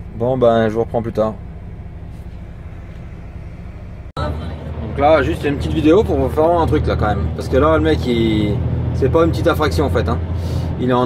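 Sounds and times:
truck diesel engine rumbling: 0:00.0 - 0:11.0.

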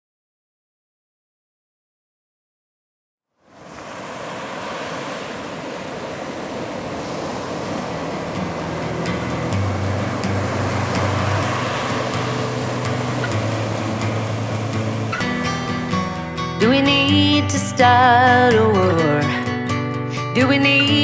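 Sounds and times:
ocean surf washing over rocks: 0:03.4 - 0:19.4.

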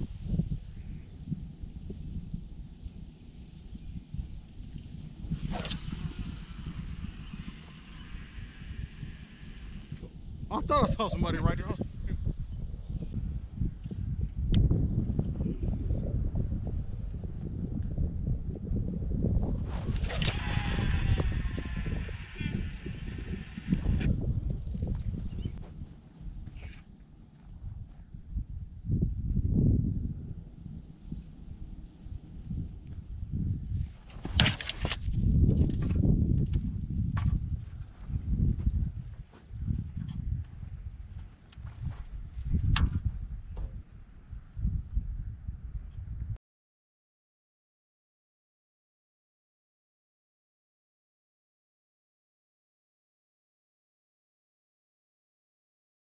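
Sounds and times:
wind buffeting microphone: 0:00.0 - 0:46.4.

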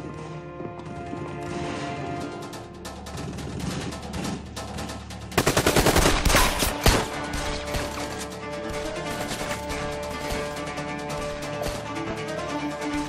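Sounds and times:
dramatic background music: 0:00.0 - 0:13.0
rapid gunfire: 0:05.3 - 0:08.2.

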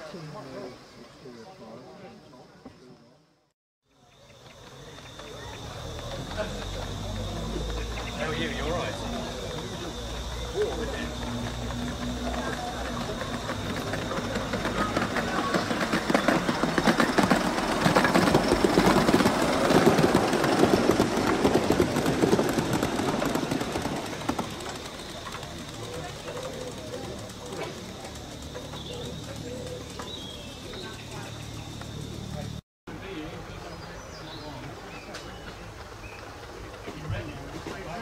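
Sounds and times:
model train wheels clattering: 0:04.0 - 0:32.5.

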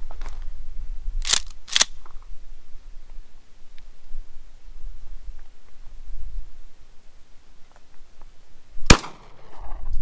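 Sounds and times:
shotgun shot: 0:08.9 - 0:09.7.

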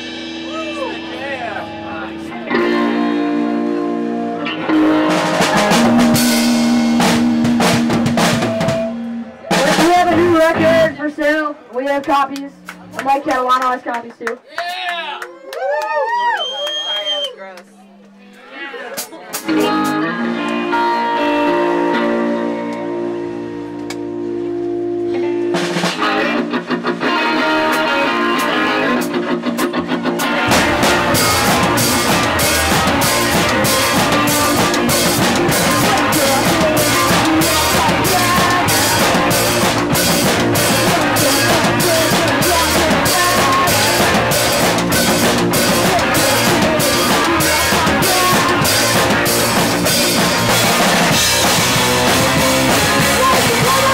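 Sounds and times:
electric guitar chords: 0:00.0 - 0:11.2, 0:19.4 - 0:53.9
drum kit beat: 0:00.0 - 0:11.4, 0:19.0 - 0:21.8, 0:25.3 - 0:53.9
bass guitar: 0:00.0 - 0:13.5, 0:19.2 - 0:53.9.

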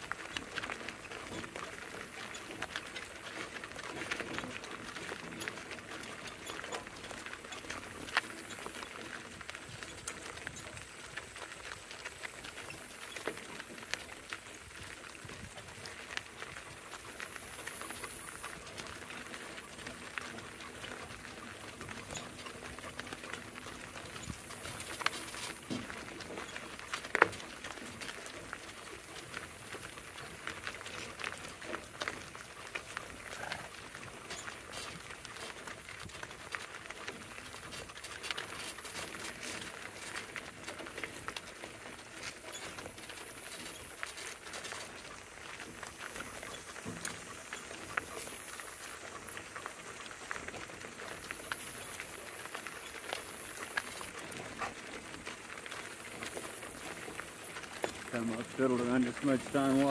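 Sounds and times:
hoofbeats on gravel: 0:00.0 - 0:59.9
wagon wheels crunching gravel: 0:00.0 - 0:59.9.

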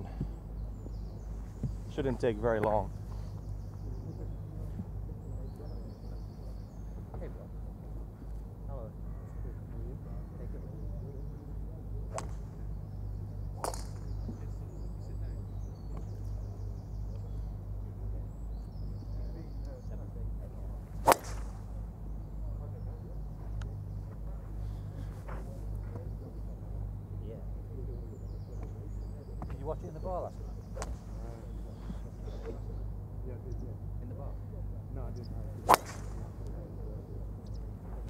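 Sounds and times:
golf club striking ball: 0:12.1 - 0:12.4, 0:13.6 - 0:14.2, 0:21.0 - 0:21.6, 0:30.7 - 0:31.1, 0:35.6 - 0:36.5.

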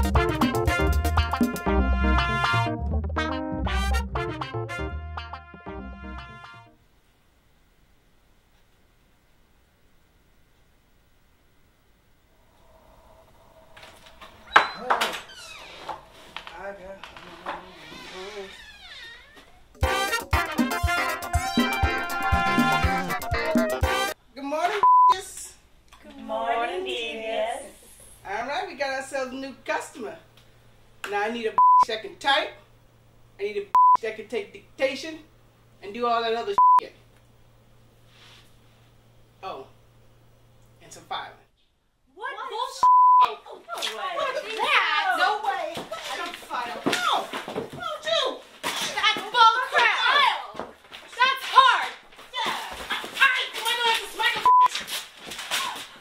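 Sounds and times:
censor bleep: 0:24.8 - 0:25.2, 0:31.6 - 0:31.9, 0:33.8 - 0:34.0, 0:36.6 - 0:36.8, 0:42.8 - 0:43.3, 0:54.4 - 0:54.7.

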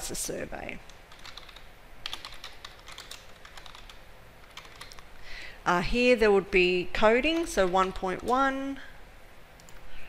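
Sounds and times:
computer keyboard typing: 0:00.9 - 0:05.1, 0:09.6 - 0:09.8.

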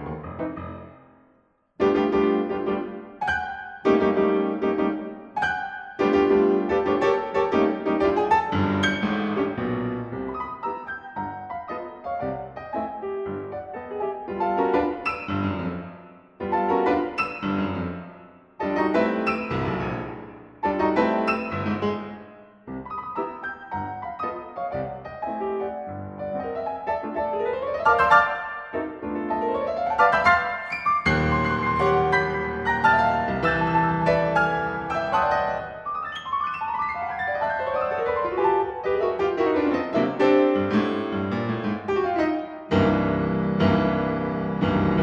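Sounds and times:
ragtime piano piece: 0:00.0 - 0:01.0, 0:01.8 - 0:45.0.

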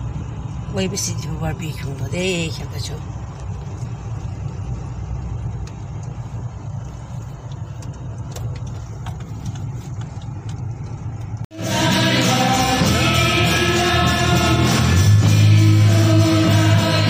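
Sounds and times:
car engine running: 0:00.0 - 0:17.0
road rumble: 0:00.0 - 0:17.0.

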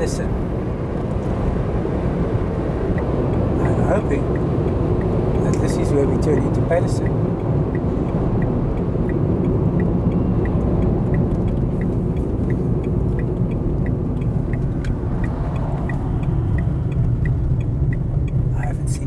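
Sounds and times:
car road and engine rumble: 0:00.0 - 0:19.0
turn indicator ticking: 0:00.0 - 0:19.0.

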